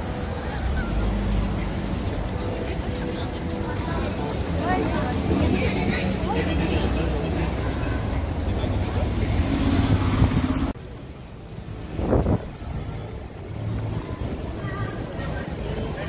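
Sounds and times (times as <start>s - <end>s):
bus engine passing: 0.0s - 16.0s
city street traffic: 0.0s - 16.0s.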